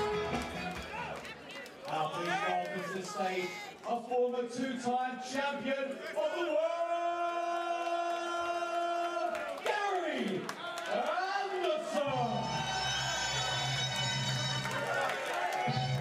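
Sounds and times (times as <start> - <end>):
crowd in a large hall: 0.0 - 16.0
announcer calling out a name: 1.9 - 6.8, 10.9 - 12.7.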